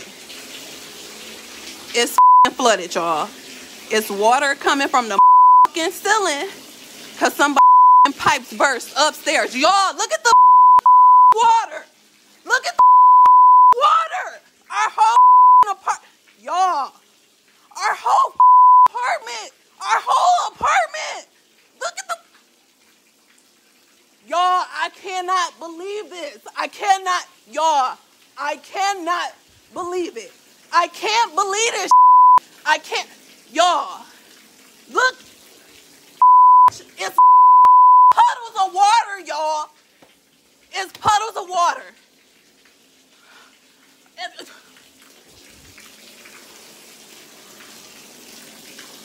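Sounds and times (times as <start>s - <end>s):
water pouring from ceiling: 0.0s - 12.8s, 13.6s - 37.2s, 38.1s - 49.0s
high voice talking: 2.0s - 3.3s, 3.9s - 6.6s, 7.2s - 10.4s, 11.3s - 11.9s, 12.5s - 12.8s, 13.7s - 17.0s, 17.8s - 22.3s, 24.3s - 32.0s, 32.7s - 34.1s, 36.7s - 37.2s, 38.1s - 39.7s, 40.7s - 42.0s
censor bleep tone: 2.2s - 2.5s, 5.2s - 5.7s, 7.6s - 8.1s, 10.3s - 11.4s, 12.8s - 13.8s, 15.2s - 15.7s, 18.4s - 18.9s, 31.9s - 32.4s, 36.2s - 38.2s.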